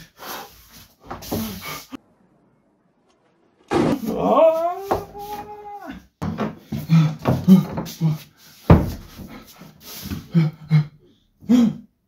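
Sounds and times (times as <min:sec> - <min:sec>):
person grunting: 0:03.7 - 0:06.0.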